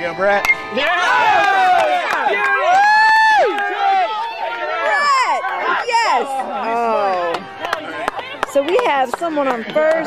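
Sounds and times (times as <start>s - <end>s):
people shouting and cheering: 0.4s - 10.0s.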